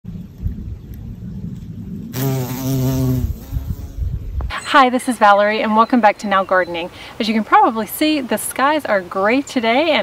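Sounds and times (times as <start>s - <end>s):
low rumble: 0.0s - 2.2s
bumblebee buzzing: 2.2s - 4.3s.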